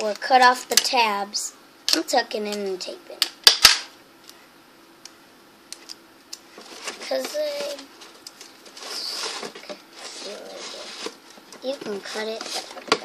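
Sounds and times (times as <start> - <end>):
foil and cardboard rustling tearing: 6.6 - 13.0.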